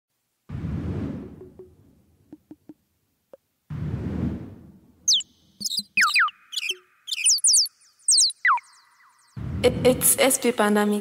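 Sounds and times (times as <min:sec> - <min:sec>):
quick falling-pitch chirps: 0:05.1 - 0:09.7.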